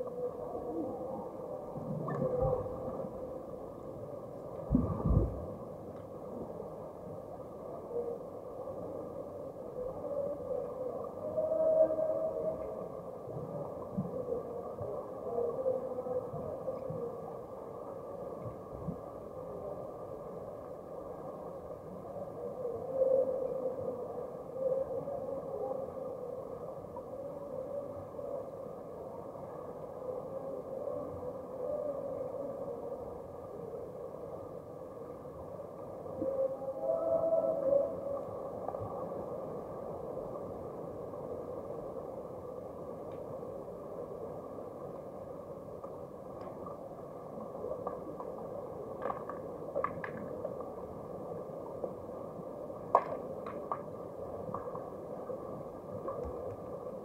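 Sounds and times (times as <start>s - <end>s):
muffled underwater water rush: 0.0s - 57.0s.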